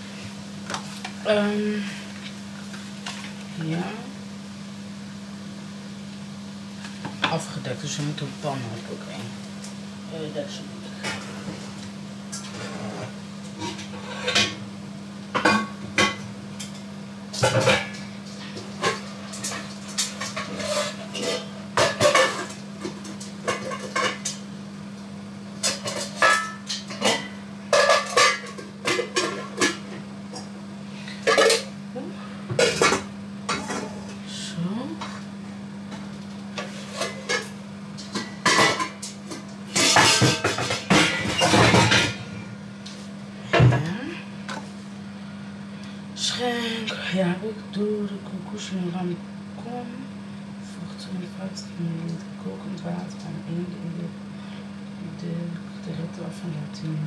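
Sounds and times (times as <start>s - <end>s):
steady low hum: 0.0s - 57.0s
metal pots and pans clattering: 17.4s - 24.4s, 25.6s - 30.4s, 31.1s - 31.7s, 32.5s - 34.0s, 36.6s - 42.3s.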